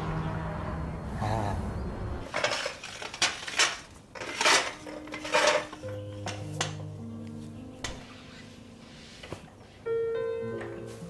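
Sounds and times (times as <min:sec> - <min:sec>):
ceramic dishes clinking: 0:02.3 - 0:06.9
soft music: 0:04.2 - 0:11.0.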